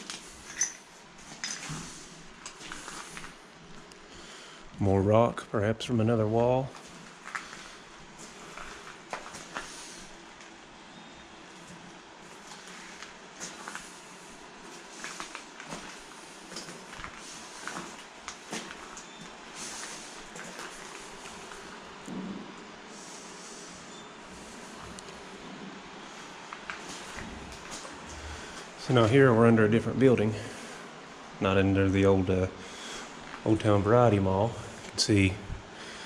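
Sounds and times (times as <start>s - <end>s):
steady hiss: 0.0s - 36.0s.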